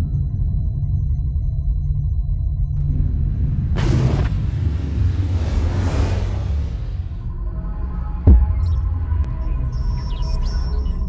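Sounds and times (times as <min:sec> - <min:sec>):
whoosh sound effect: 0:03.7 - 0:07.4.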